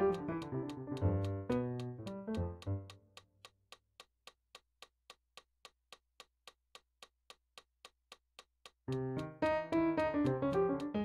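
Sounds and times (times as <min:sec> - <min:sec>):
metronome clicking: 0:00.0 - 0:03.3, 0:05.9 - 0:11.0
keyboard notes: 0:08.9 - 0:11.0.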